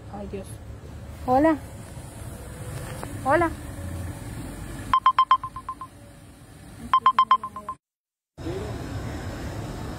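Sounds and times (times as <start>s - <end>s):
rapid electronic phone beeps: 4.9s - 5.9s, 7.0s - 7.8s.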